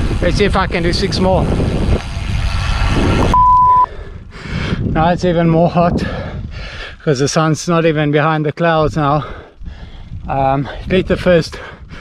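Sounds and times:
wind noise on microphone: 0:00.0 - 0:07.1, 0:08.8 - 0:12.0
electronic beep: 0:03.3 - 0:03.9.

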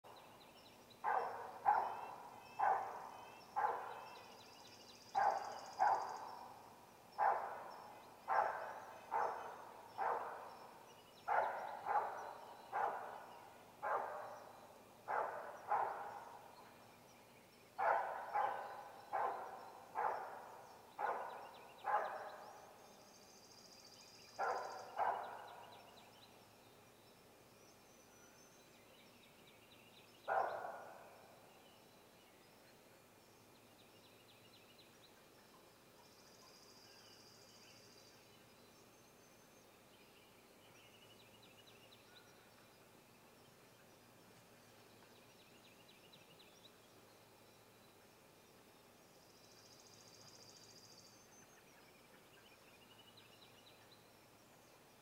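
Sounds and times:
faint high bird chirps: 0:00.1 - 0:06.6, 0:07.2 - 0:32.8.

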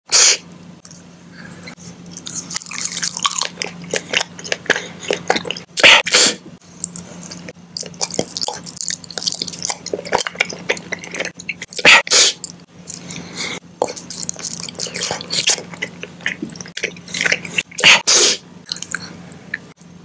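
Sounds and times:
faint steady hum: 0:00.1 - 0:20.0
chewing gummy candies: 0:02.0 - 0:05.9, 0:06.8 - 0:18.0, 0:18.6 - 0:20.0.

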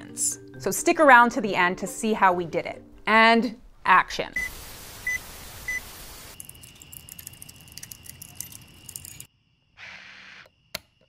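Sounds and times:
film projector crackling hiss: 0:04.4 - 0:07.4.

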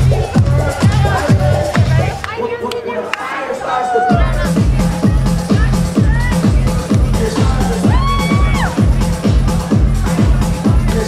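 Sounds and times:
steady kick drum: 0:00.0 - 0:02.2, 0:04.1 - 0:11.0
electronic dance music: 0:00.0 - 0:11.0.

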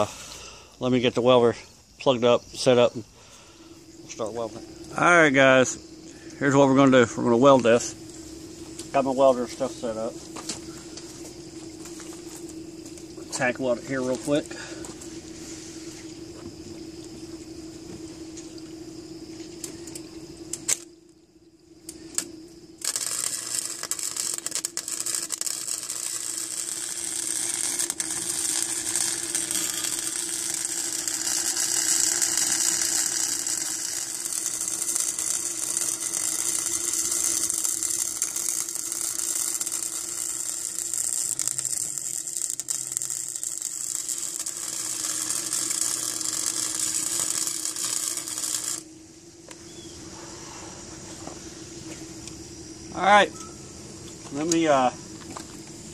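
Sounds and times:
welder arc crackling: 0:04.0 - 0:16.2, 0:19.5 - 0:21.2, 0:21.8 - 0:49.7, 0:54.2 - 0:55.9.

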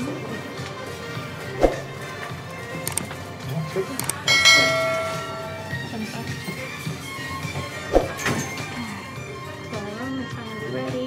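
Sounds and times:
background music: 0:00.0 - 0:11.0
mouse clicks: 0:02.9 - 0:03.1
bell ding: 0:04.3 - 0:05.8.

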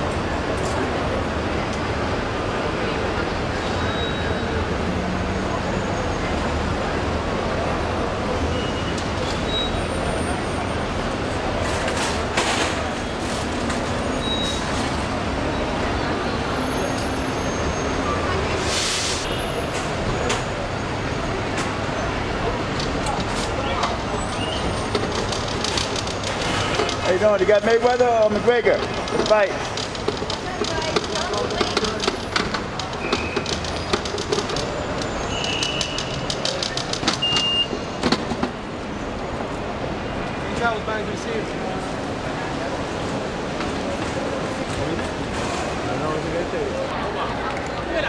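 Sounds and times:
busy curbside noise: 0:00.0 - 0:48.0
traffic rumble: 0:00.0 - 0:48.0
short hiss: 0:18.6 - 0:19.4
luggage cart wheels rattling: 0:22.8 - 0:38.3.

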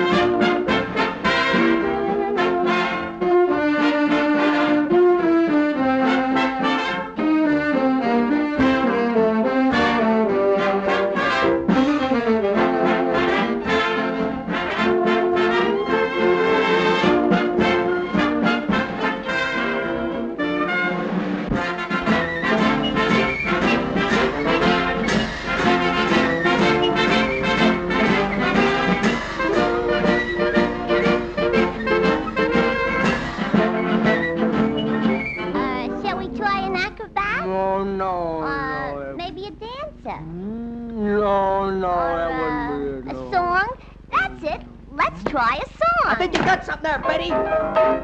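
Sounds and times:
swing jazz band music: 0:00.0 - 0:40.0, 0:44.2 - 0:48.0.

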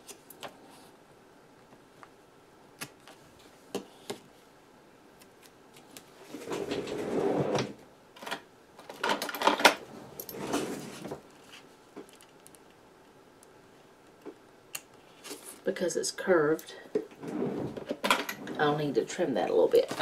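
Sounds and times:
rustling and clattering: 0:06.2 - 0:12.6, 0:17.0 - 0:18.8.

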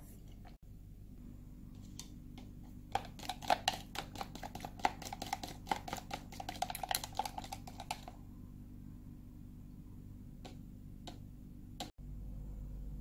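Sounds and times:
chopsticks beating egg in container: 0:01.8 - 0:08.2.

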